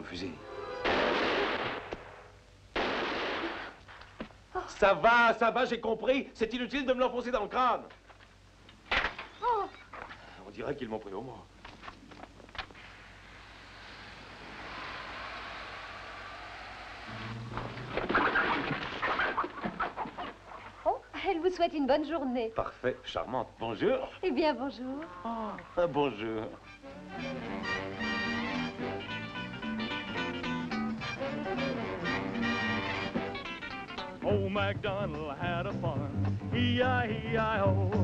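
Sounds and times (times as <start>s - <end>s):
pistol shots: 0.8s - 3.8s
steady hiss: 10.2s - 21.7s.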